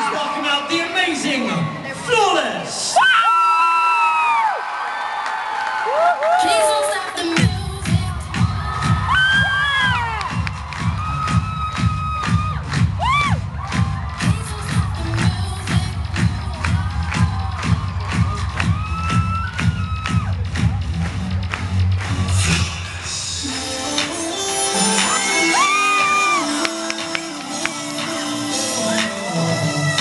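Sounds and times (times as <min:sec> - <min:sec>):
audience screaming and cheering: 0:00.0 - 0:30.0
loud dance music: 0:06.3 - 0:30.0.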